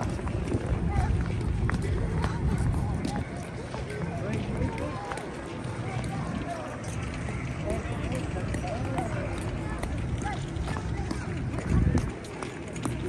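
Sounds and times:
constant low rumble: 0.0s - 13.0s
faint voices: 0.0s - 13.0s
footsteps on paving stones: 0.0s - 13.0s.

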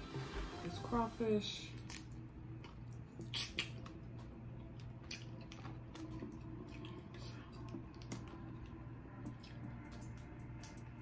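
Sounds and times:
steady low hum: 0.0s - 11.0s
crawfish shell cracking: 1.8s - 2.2s.

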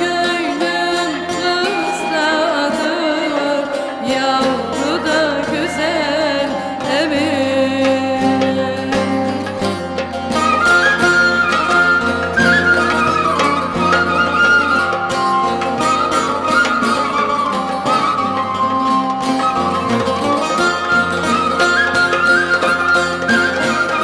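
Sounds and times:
folk instrumental music: 0.0s - 24.0s
plucked lute: 0.0s - 24.0s.

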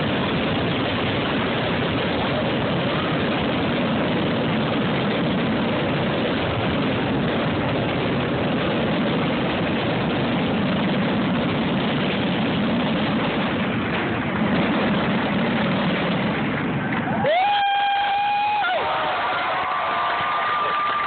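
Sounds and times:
fireworks exploding in a rumble: 0.0s - 21.0s.

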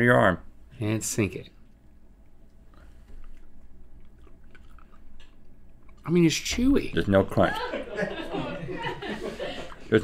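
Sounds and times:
soft chewing: 1.4s - 6.3s.

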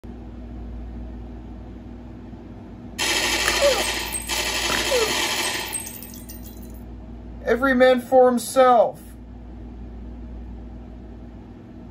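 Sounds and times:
rapid gunfire with ricochet whine: 3.0s - 6.5s.

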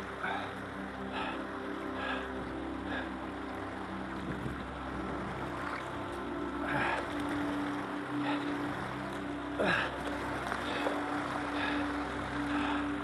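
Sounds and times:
paddle strokes splashing: 0.0s - 13.0s
water rushing over shoals: 0.0s - 13.0s.

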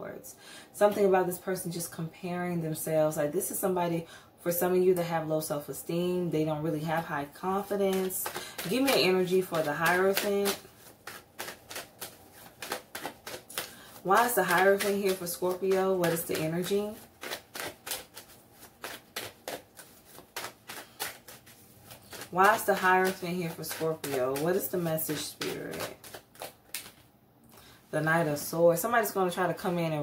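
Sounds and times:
cards being shuffled: 7.4s - 27.1s.

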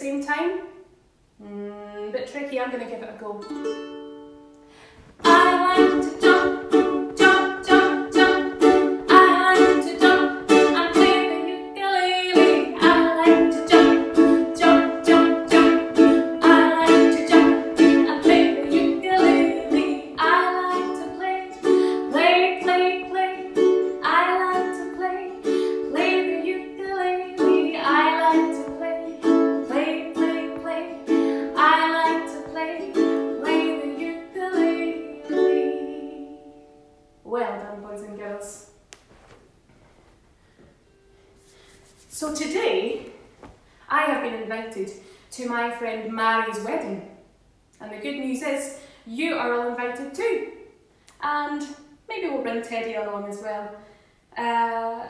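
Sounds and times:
ukulele strumming: 3.4s - 37.1s.

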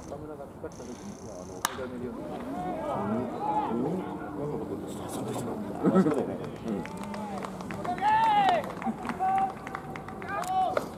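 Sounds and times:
background chatter: 0.0s - 10.9s.

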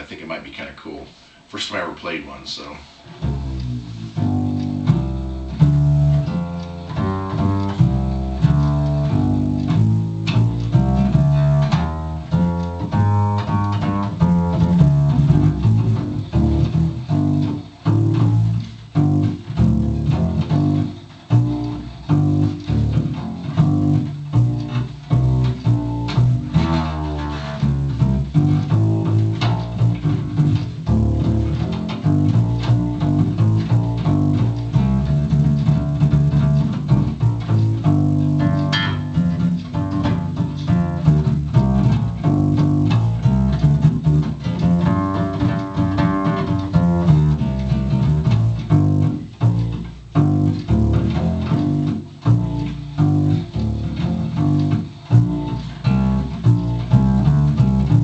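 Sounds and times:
double bass low notes: 0.0s - 58.0s.

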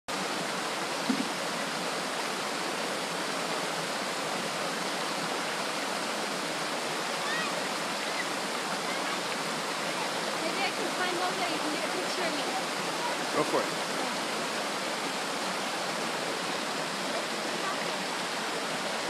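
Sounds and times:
creek pouring over rocks: 0.1s - 19.0s
waterfall rushing: 0.1s - 19.0s.

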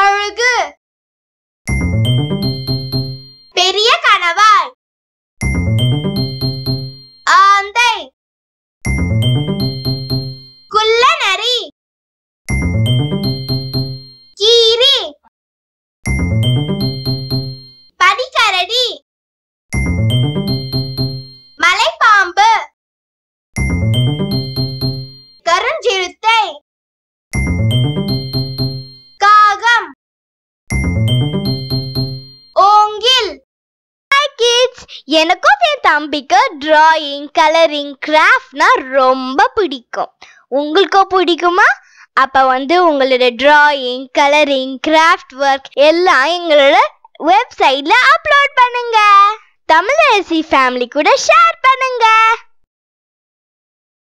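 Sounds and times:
chime jingle over bass line: 1.7s - 3.5s, 5.4s - 7.3s, 8.9s - 10.7s, 12.5s - 14.4s, 16.1s - 17.9s, 19.8s - 21.6s, 23.6s - 25.4s, 27.4s - 29.2s, 30.7s - 32.6s.

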